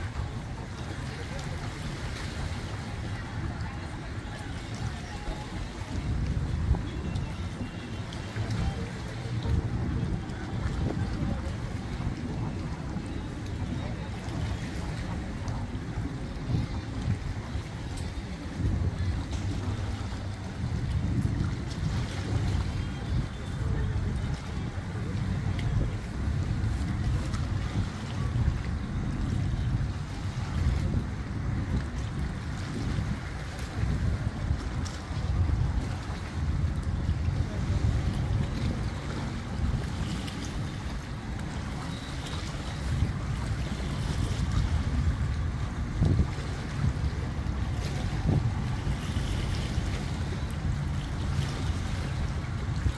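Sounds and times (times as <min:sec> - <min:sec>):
lake water washing at shore: 0:00.0 - 0:52.9
wind buffeting microphone: 0:00.0 - 0:52.9.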